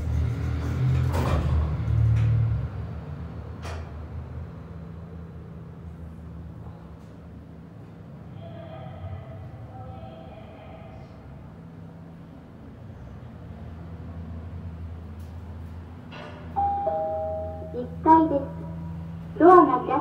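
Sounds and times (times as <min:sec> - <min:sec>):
elevator humming: 0:03.2 - 0:20.0
two-tone elevator arrival chime: 0:16.6 - 0:18.0
recorded voice announcement: 0:16.9 - 0:20.0.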